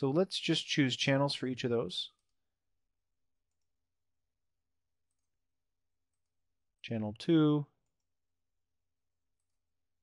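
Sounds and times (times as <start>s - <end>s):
computer mouse click: 5.0s - 5.4s.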